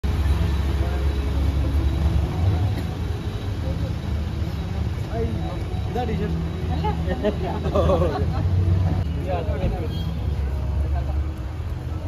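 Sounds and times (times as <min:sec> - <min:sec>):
men talking: 0:03.7 - 0:11.4.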